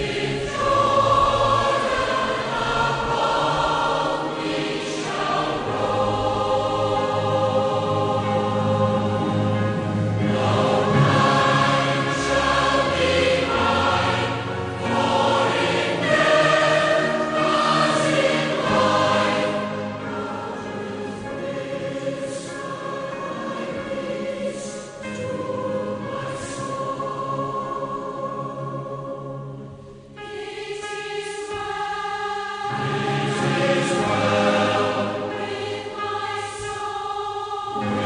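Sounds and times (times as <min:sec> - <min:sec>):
choir singing a hymn: 0:00.0 - 0:38.0.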